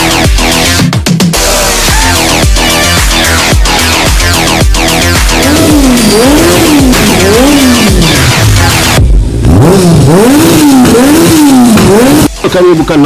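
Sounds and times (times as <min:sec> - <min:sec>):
fast electronic music: 0:00.0 - 0:13.0
car engines revving: 0:01.4 - 0:13.0.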